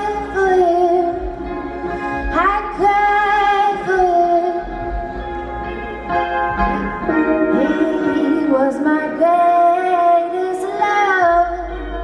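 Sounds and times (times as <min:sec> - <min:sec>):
band accompaniment: 0:00.0 - 0:12.0
woman singing long held notes: 0:06.6 - 0:12.0.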